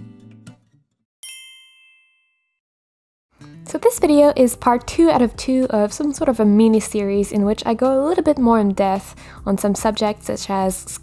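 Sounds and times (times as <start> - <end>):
bright ding: 1.2 - 2.6.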